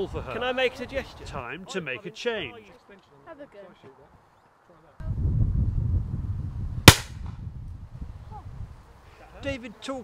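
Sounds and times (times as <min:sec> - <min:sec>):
shotgun shot: 0:06.9 - 0:07.4.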